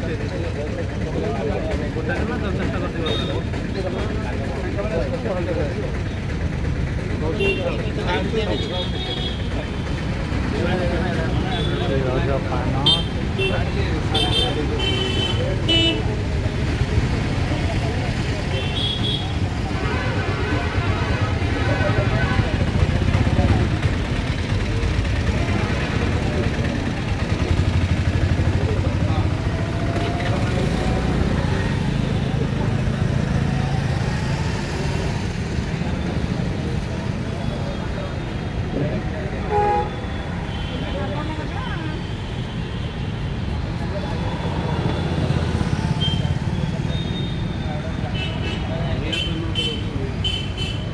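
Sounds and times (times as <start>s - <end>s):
chatter of passers-by: 0.0s - 50.9s
street traffic: 0.0s - 50.9s
vehicle horns: 12.8s - 16.1s, 18.5s - 22.0s, 39.4s - 43.2s, 45.8s - 50.9s.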